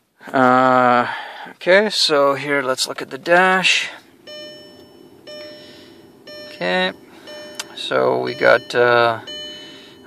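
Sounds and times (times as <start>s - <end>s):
car warning chime: 3.6s - 10.0s.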